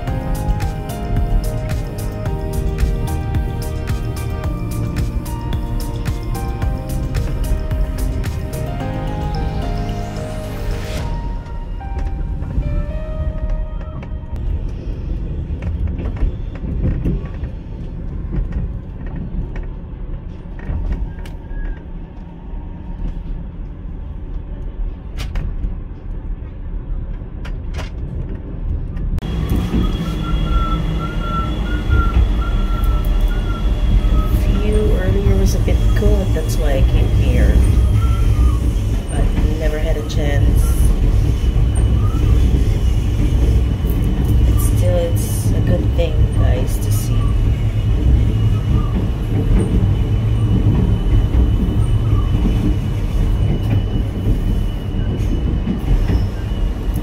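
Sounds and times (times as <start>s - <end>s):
sustained high tones: 0.0s - 14.8s, 29.2s - 57.0s
train rumbling on rails: 0.0s - 57.0s.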